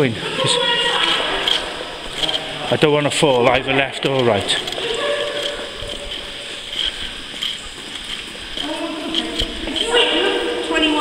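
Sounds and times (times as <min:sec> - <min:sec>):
faint footsteps walking: 0:00.0 - 0:11.0.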